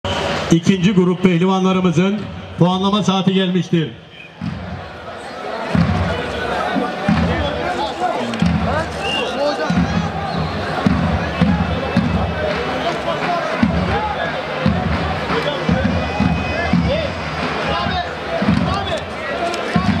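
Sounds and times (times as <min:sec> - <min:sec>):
bass drums beating: 0:04.4 - 0:05.1, 0:05.7 - 0:07.7, 0:08.4 - 0:20.0.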